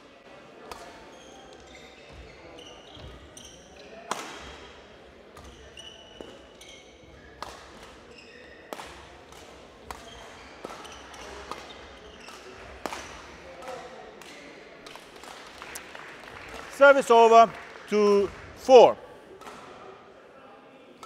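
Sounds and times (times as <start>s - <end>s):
shoe squeaks on court floor: 0.9s - 4.6s, 5.4s - 8.7s, 9.9s - 12.5s.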